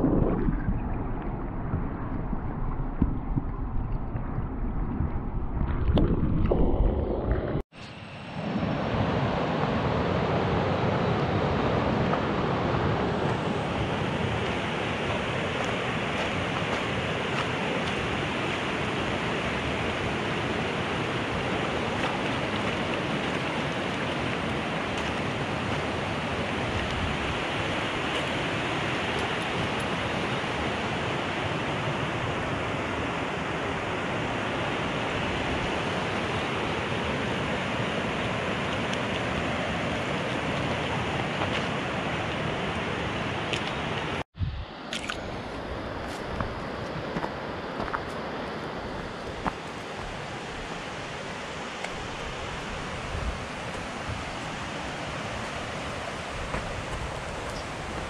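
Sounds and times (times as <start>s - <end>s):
stream rushing over stones: 0.0s - 6.9s, 7.7s - 58.0s.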